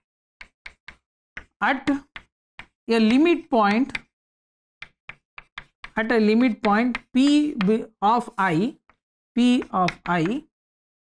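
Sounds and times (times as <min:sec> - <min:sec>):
chalk tapping on chalkboard: 0:00.4 - 0:04.1, 0:04.8 - 0:10.5.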